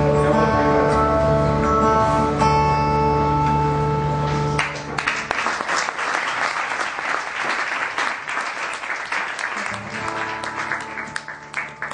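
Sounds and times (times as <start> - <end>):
acoustic guitar strumming: 0.0 - 5.2, 9.6 - 11.9.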